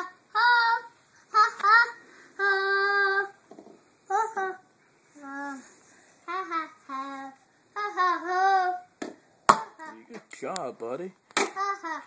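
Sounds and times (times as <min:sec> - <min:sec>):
child singing: 0:00.0 - 0:03.4, 0:04.1 - 0:05.7, 0:06.3 - 0:08.9
plastic bat knocking ball: 0:09.0 - 0:09.8, 0:11.3 - 0:11.6.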